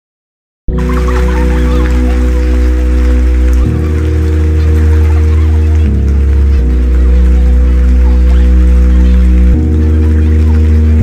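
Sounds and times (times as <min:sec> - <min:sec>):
deep bass: 0:00.7 - 0:11.0
held synth chords: 0:00.7 - 0:11.0.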